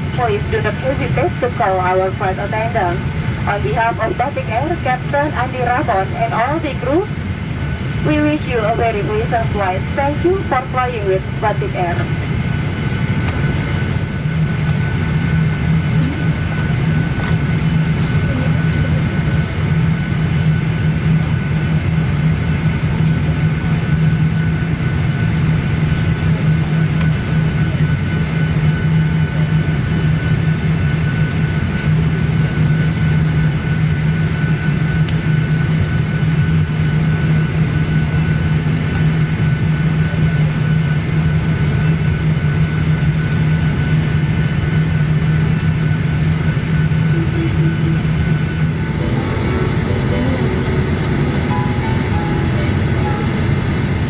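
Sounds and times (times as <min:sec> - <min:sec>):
thin steady whine: 0:00.0 - 0:30.5, 0:31.9 - 0:54.0
low cabin hum: 0:00.0 - 0:54.0.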